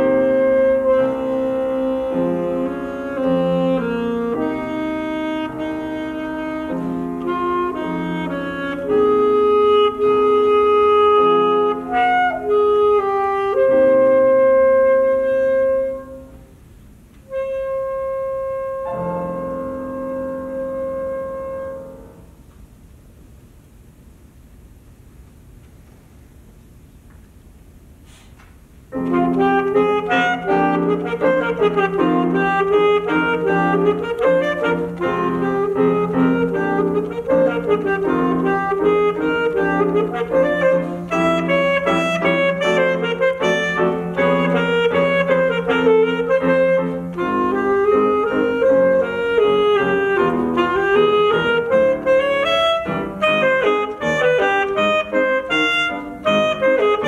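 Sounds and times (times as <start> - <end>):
low musical accompaniment: 0.0 - 16.6, 17.2 - 22.5, 28.9 - 57.0
saxophone playing long held notes: 0.0 - 16.6, 17.2 - 22.4, 29.0 - 57.0.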